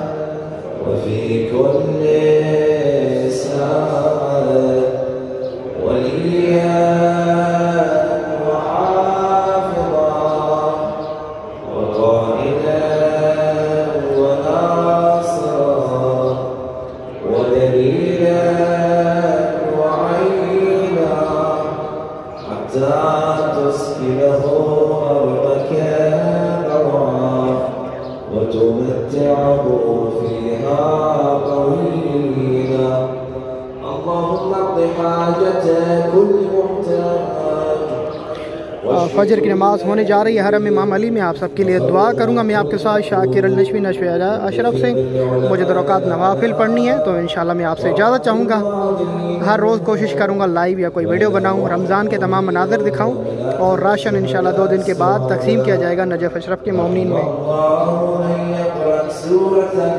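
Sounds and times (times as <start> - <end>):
man chanting: 0.0 - 59.9.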